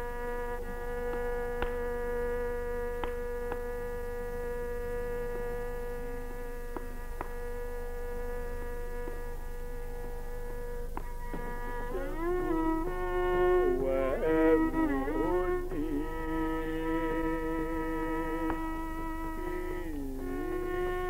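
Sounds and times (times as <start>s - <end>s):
low electrical hum: 0.0s - 21.0s
tanpura drone: 0.0s - 21.0s.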